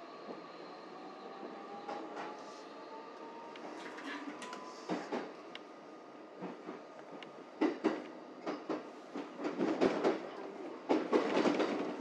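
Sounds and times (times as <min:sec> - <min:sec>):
train running noise: 0:00.0 - 0:12.0.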